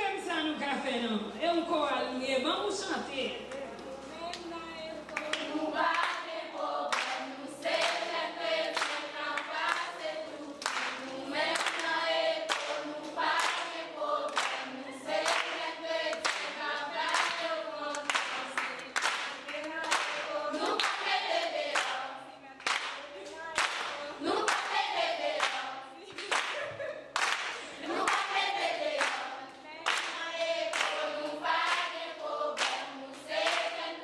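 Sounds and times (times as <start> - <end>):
choir singing unaccompanied: 3.9 - 26.6, 27.6 - 34.0
hand claps: 5.1 - 6.3, 6.9 - 10.0, 10.6 - 22.0, 22.6 - 33.9.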